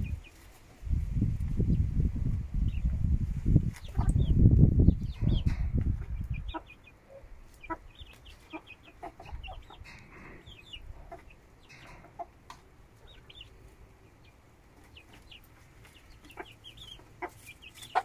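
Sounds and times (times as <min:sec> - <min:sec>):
chicks peeping: 0:00.0 - 0:18.0
chickens clucking softly: 0:01.4 - 0:18.0.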